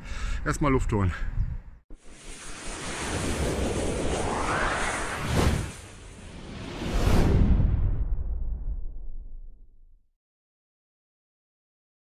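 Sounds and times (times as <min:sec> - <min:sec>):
hiss rising in pitch: 0:02.0 - 0:06.5
low rumble: 0:03.0 - 0:10.0.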